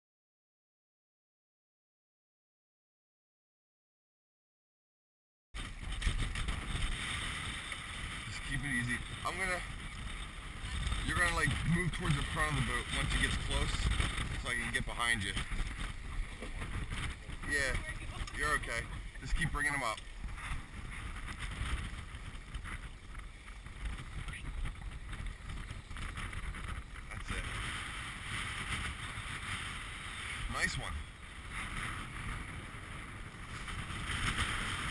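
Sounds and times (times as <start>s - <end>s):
water around a boat: 5.6s - 34.9s
wind buffeting microphone: 5.6s - 34.9s.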